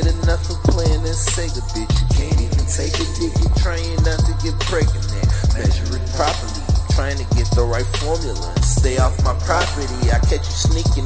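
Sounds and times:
heavy bass: 0.0s - 11.0s
rapping over a beat: 0.0s - 11.0s.

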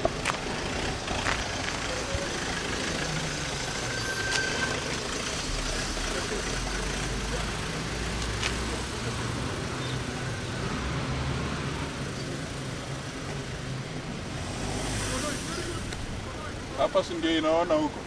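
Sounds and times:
vehicle engine idling: 0.0s - 10.7s, 11.8s - 18.0s
faint voices: 1.4s - 3.3s.

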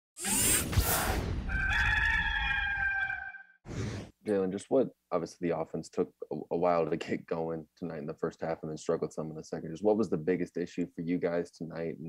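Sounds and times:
rooster crowing: 1.5s - 3.6s.

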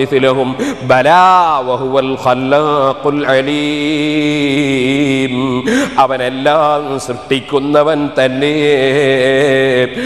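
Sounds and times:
man chanting melodic recitation: 0.0s - 10.0s.

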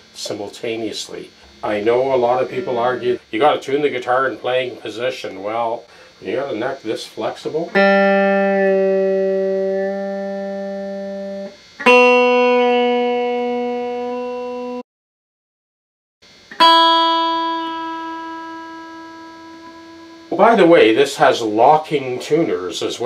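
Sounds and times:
electric guitar notes plucked: 1.3s - 4.8s, 7.6s - 14.8s, 16.3s - 21.6s.

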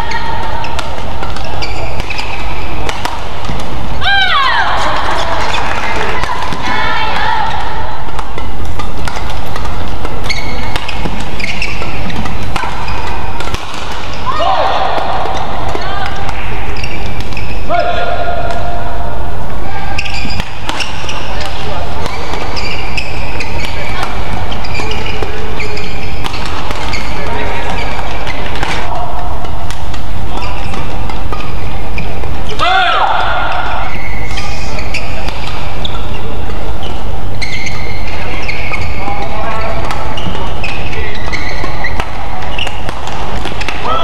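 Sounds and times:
shoe soles squeaking: 0.0s - 7.4s, 8.4s - 14.4s, 15.1s - 17.7s, 19.7s - 29.0s, 29.8s - 32.6s, 33.5s - 44.0s
rackets striking shuttlecock: 0.4s - 4.0s, 4.8s - 19.0s, 19.9s - 44.0s.

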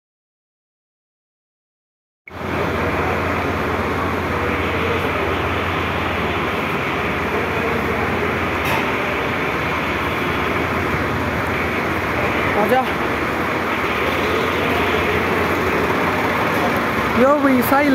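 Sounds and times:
machine humming: 2.3s - 17.9s.

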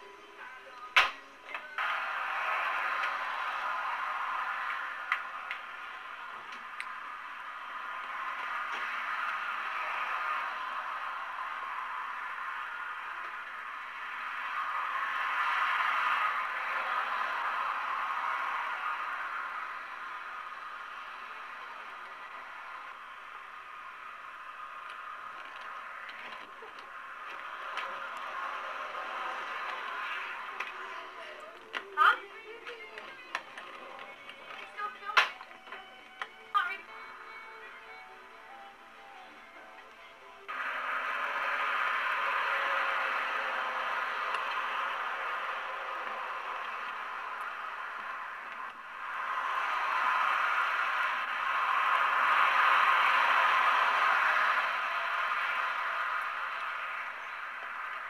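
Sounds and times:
cars passing: 0.0s - 58.0s.

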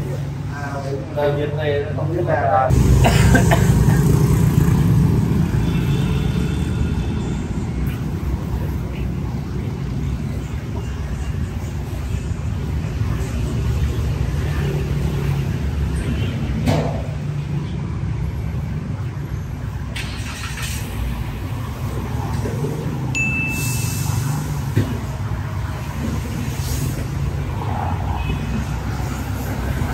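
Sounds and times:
traffic driving past: 0.0s - 29.9s
high beep: 23.2s - 24.2s.

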